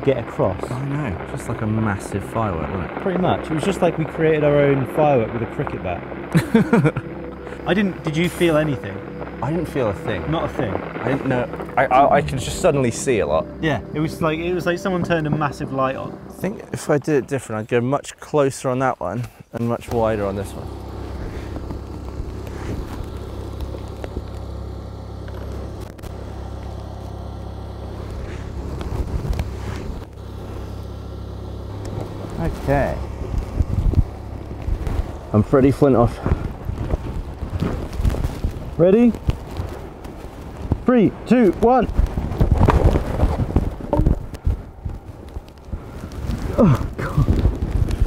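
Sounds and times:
wind rumbling on microphone: 20.0s - 48.0s.

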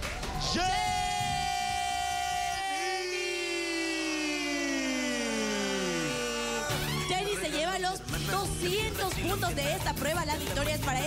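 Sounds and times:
presenters shouting into microphones: 0.2s - 7.6s.

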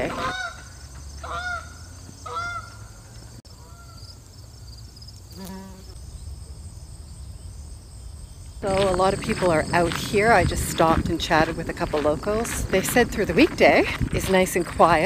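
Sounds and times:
geese honking: 0.0s - 2.8s.

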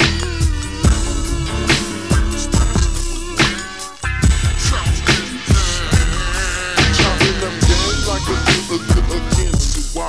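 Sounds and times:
slowed-down hip hop music: 0.0s - 10.0s.

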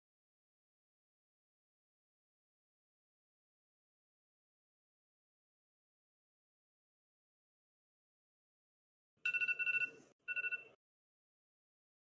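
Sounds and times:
electronic timer alarm trilling: 9.3s - 10.8s.

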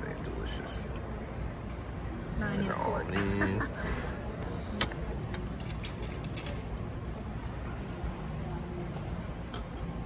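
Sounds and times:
low rumble of traffic: 0.0s - 10.0s.

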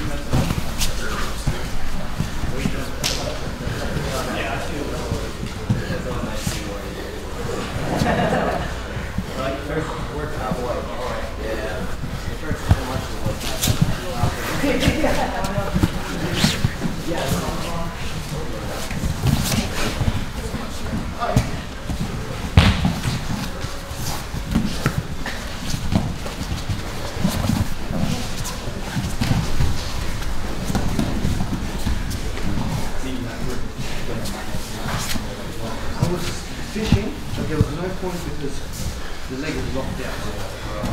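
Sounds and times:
shuffling: 0.0s - 40.9s
bodies thudding on mats: 12.6s - 32.8s.

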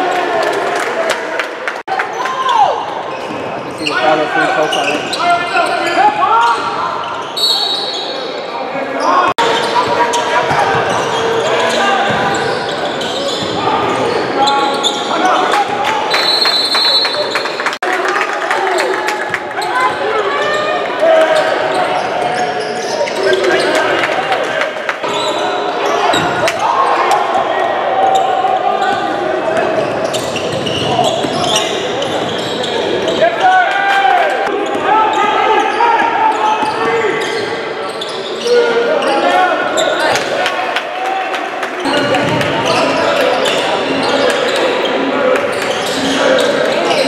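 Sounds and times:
overlapping crowd voices: 0.0s - 3.2s, 15.1s - 22.3s, 23.0s - 30.0s, 39.3s - 47.0s.

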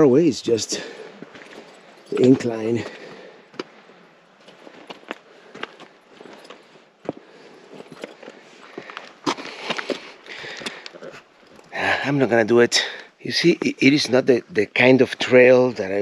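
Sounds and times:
footsteps on rock and gravel: 0.8s - 11.7s
shoes clicking on stone: 4.4s - 11.7s.

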